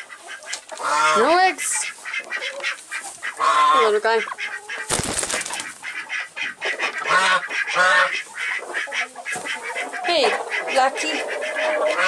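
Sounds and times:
ducks calling: 0.0 - 12.0.

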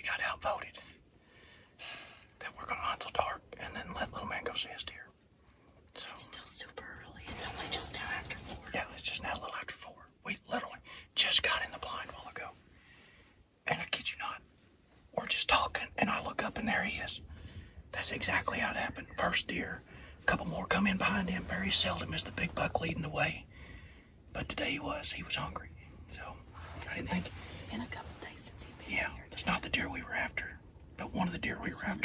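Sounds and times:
people whispering: 2.4 - 5.1, 6.0 - 12.6, 13.6 - 14.4, 15.1 - 23.5, 24.3 - 32.0.

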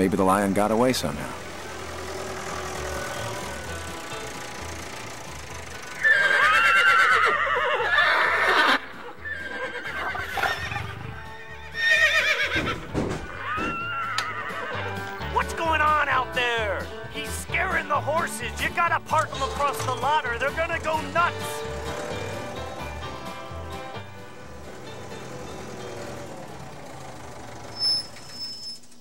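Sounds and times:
horses whinnying: 5.8 - 15.1
soft background music: 13.5 - 26.7.

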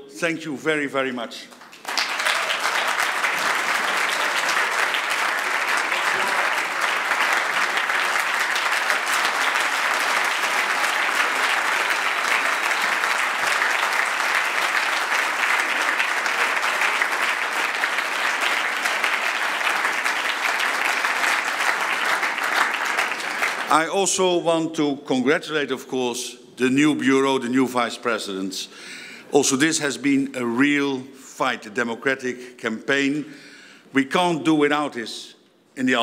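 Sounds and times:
audience applauding: 1.5 - 24.2.

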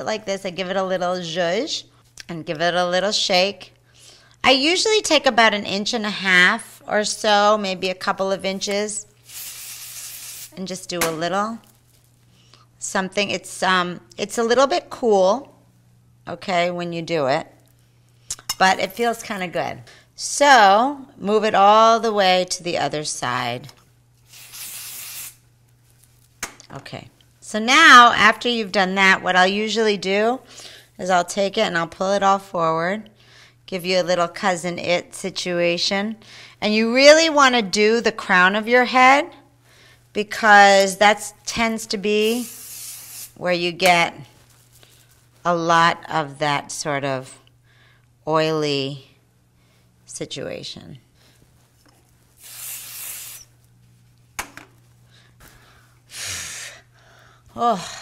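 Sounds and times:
aerosol spray hissing: 9.2 - 10.6, 24.3 - 25.4, 42.1 - 43.4, 52.4 - 53.5.

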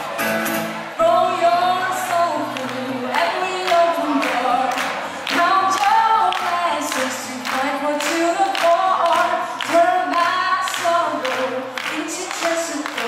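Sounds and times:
acoustic guitar: 0.0 - 13.0
woman singing into microphone: 1.0 - 13.0.

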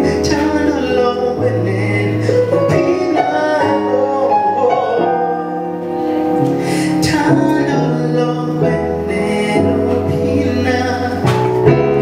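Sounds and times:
soul band playing: 0.0 - 12.0.

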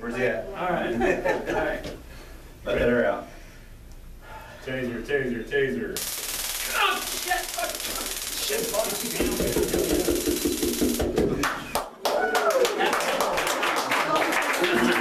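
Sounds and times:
taser electric crackle: 6.0 - 11.2.

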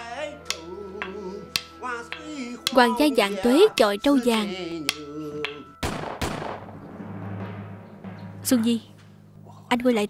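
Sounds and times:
man singing note: 4.4 - 5.7
loud sharp cracks with echo: 5.8 - 8.4.

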